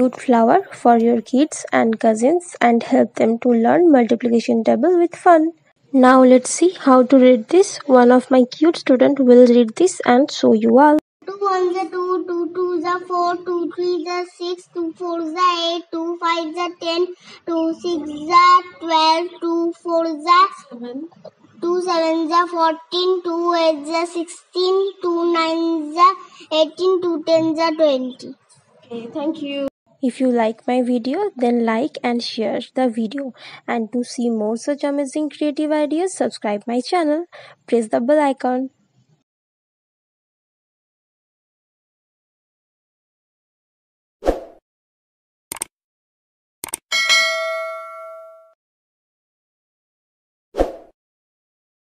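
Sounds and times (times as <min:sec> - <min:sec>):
notification bell ding: 0:46.9 - 0:48.6.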